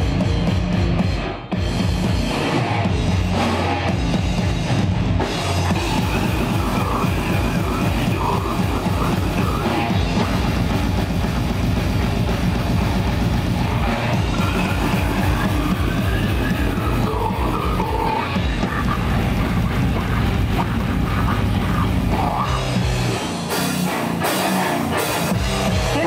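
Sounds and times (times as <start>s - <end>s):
bass guitar: 0.0s - 26.0s
distorted electric guitars: 0.0s - 26.0s
drum kit with fast bass drum: 0.0s - 26.0s.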